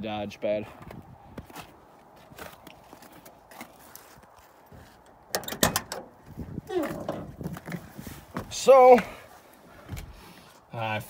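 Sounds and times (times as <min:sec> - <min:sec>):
car door latch clunk: 0:05.3 - 0:06.1
door creaking open: 0:05.3 - 0:07.5.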